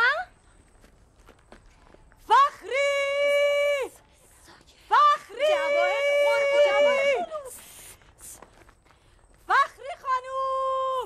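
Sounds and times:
faint footsteps: 0.3s - 3.1s, 6.4s - 10.2s
person speaking: 5.3s - 8.4s.

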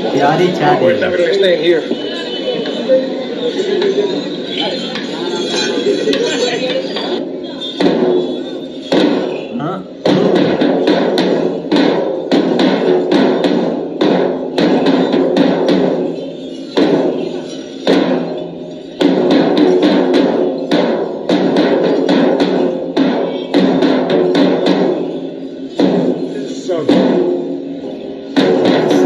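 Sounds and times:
drums beaten with sticks: 0.0s - 2.0s, 6.1s - 29.0s.

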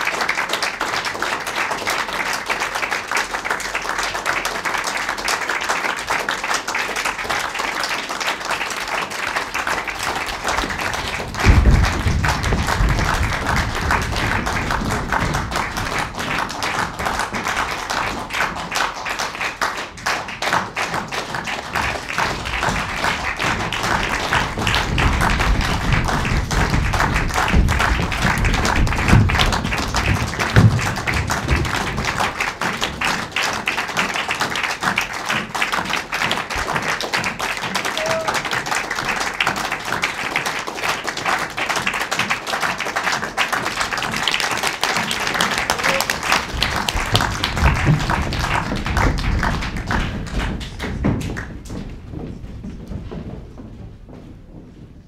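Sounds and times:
audience applauding: 0.0s - 52.1s
low thuds: 10.5s - 16.2s, 22.3s - 32.5s.

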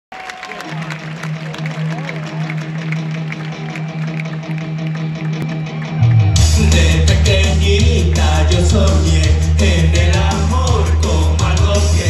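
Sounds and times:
crowd voices: 0.1s - 12.0s
live pop band playing: 5.4s - 12.0s.

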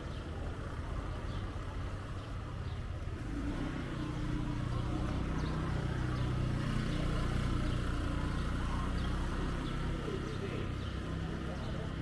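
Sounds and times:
street noise: 0.0s - 12.0s
vehicle engine humming: 0.0s - 12.0s.

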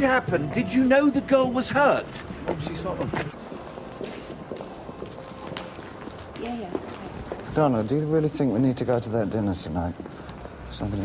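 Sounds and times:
footsteps on a staircase: 0.0s - 7.8s.

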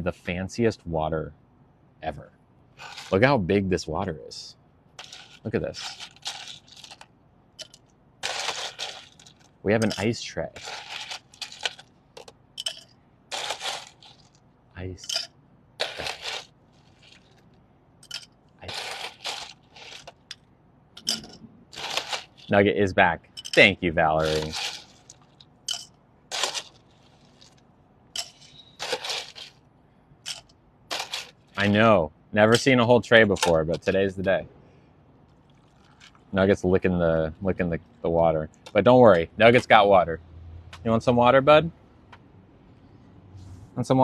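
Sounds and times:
ice rattling on steel tray: 2.8s - 3.2s, 5.0s - 7.0s, 7.6s - 11.9s, 12.6s - 14.4s, 15.0s - 17.4s, 18.0s - 20.3s, 21.0s - 22.6s, 23.4s - 27.6s, 28.2s - 29.5s, 30.3s - 31.7s
ice cubes clinking on tongs: 5.0s - 7.0s, 7.6s - 11.8s, 12.6s - 14.3s, 15.0s - 16.4s, 18.0s - 20.4s, 21.0s - 22.5s, 23.4s - 27.5s, 28.2s - 29.5s, 30.3s - 31.7s.

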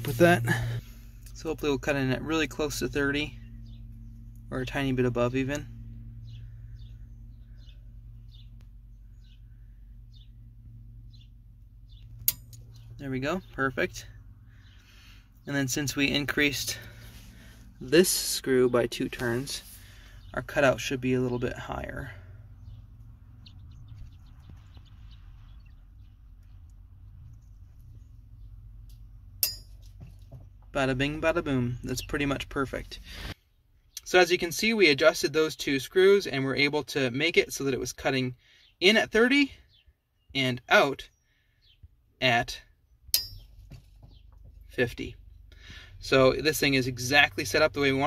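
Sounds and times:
steady low hum: 0.0s - 38.6s
small bird chirping: 2.9s - 17.5s, 18.2s - 34.2s.

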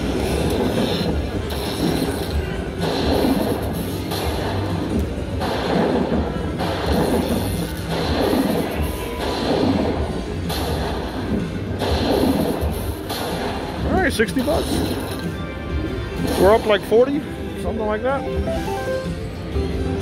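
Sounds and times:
slot machine game music: 0.0s - 20.0s.

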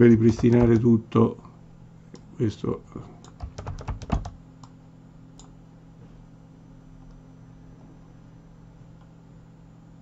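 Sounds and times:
computer keyboard and mouse clicks: 0.2s - 0.9s, 3.2s - 4.8s.

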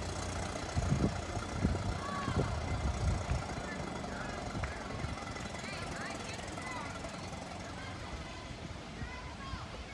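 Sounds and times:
distant car engine rumble: 0.0s - 9.9s.

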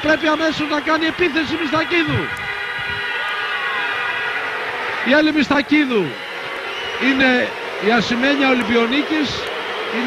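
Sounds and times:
arena crowd din: 0.0s - 10.0s
whistle-like tones: 6.0s - 7.5s.

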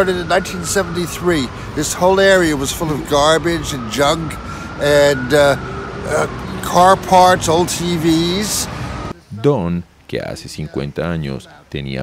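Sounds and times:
street traffic hum: 0.0s - 11.7s
man speaking: 0.0s - 12.0s.

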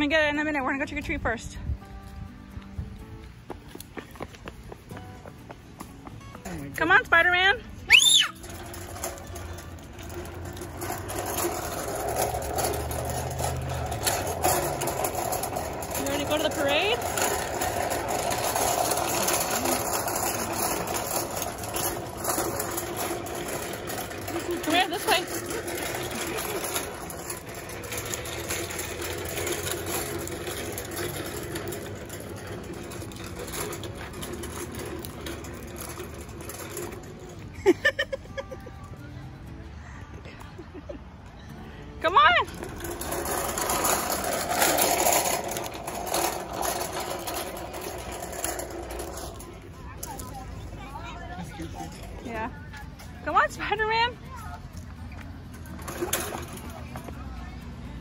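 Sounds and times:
toy wagon wheels rattling on concrete: 0.0s - 2.2s, 2.9s - 58.0s
high-pitched cries: 7.8s - 8.5s.

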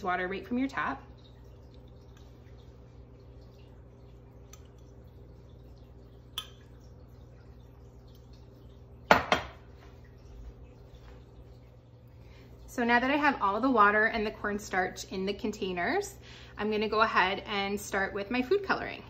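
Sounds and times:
metal spoon clinking glass: 6.4s - 6.7s
glass cup knocking on counter: 9.1s - 9.6s.

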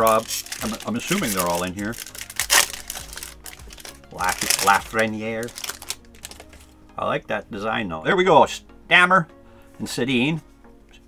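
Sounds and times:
person speaking: 0.0s - 2.2s, 2.8s - 10.4s
foil wrapper crinkling: 0.0s - 6.6s.

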